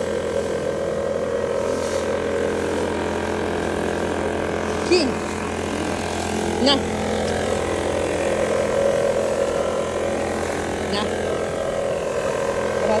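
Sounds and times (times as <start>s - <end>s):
leaf blower engine droning: 0.0s - 13.0s.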